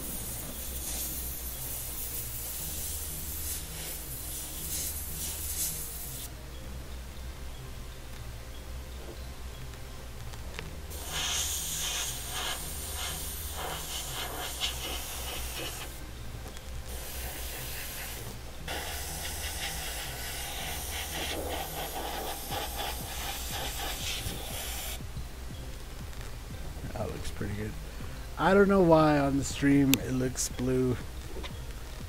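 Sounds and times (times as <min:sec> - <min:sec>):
airbrush spraying hiss: 0:00.0 - 0:06.3, 0:10.9 - 0:16.0, 0:16.9 - 0:25.0.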